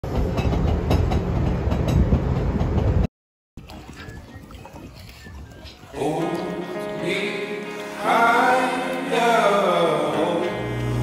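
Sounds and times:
train wheels rumbling on track: 0.0 - 3.1.

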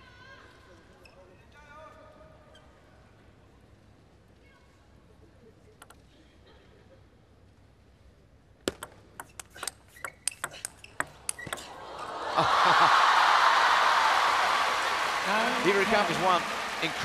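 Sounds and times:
table tennis ball clicking: 8.7 - 11.6
crowd cheering and applause: 11.7 - 17.0.

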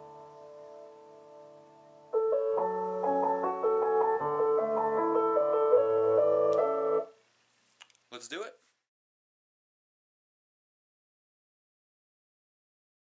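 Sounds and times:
piano music: 0.0 - 7.1.

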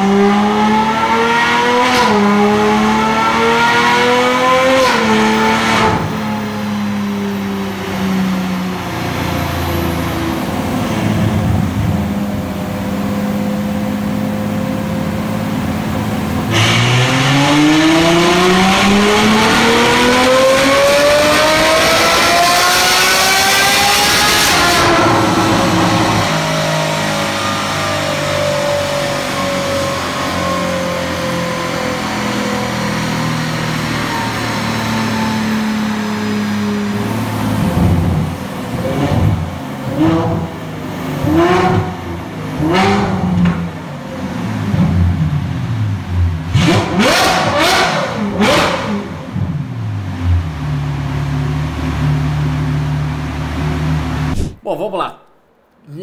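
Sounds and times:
car engine revving on dynamometer: 0.0 - 54.4.

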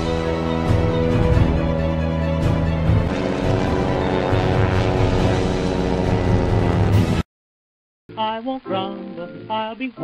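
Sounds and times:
soundtrack music with heavy bass: 0.0 - 7.2.

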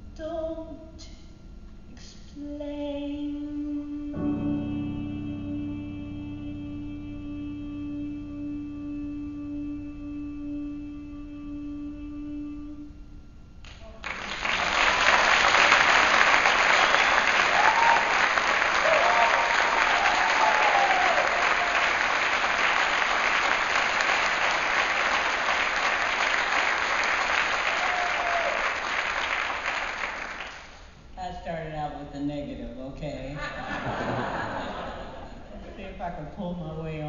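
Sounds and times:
piano chord ringing: 4.1 - 10.0
audience cheering: 14.0 - 30.6
audience applauding: 14.0 - 30.8.

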